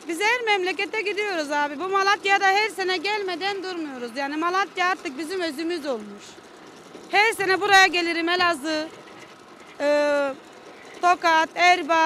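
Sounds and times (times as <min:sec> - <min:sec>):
woman speaking: 0:00.0 - 0:06.4, 0:07.1 - 0:08.9, 0:09.8 - 0:10.4, 0:11.0 - 0:12.0.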